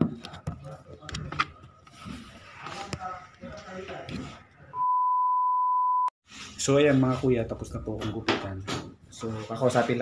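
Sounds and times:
steady pure reference beep: 4.8s - 6.1s.

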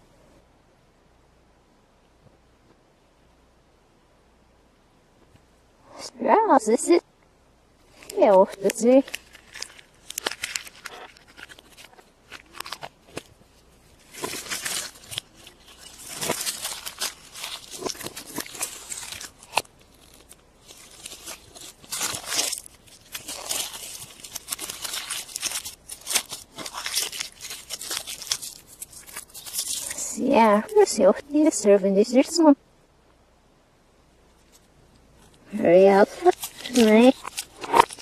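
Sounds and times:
foil wrapper crinkling and tearing: 7.9s - 31.5s, 34.4s - 38.0s.

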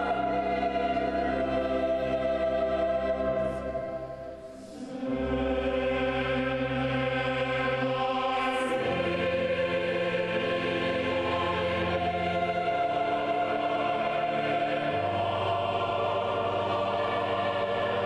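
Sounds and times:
choir singing sustained chords: 0.0s - 18.0s.

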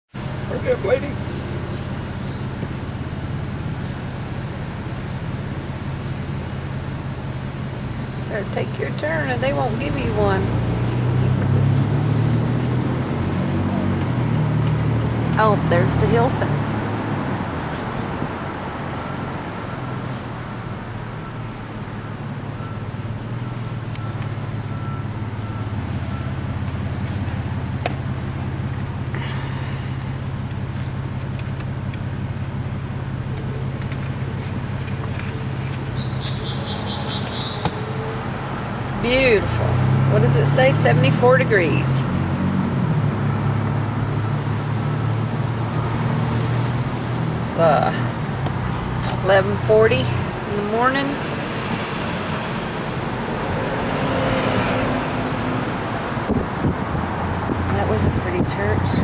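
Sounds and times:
car engine hum: 0.1s - 59.0s
road noise: 0.1s - 59.0s.

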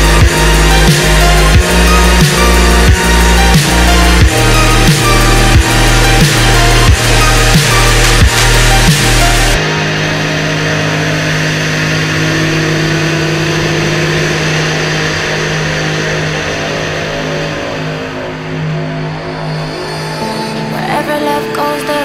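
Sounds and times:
motorcycle engine running: 0.0s - 19.2s.

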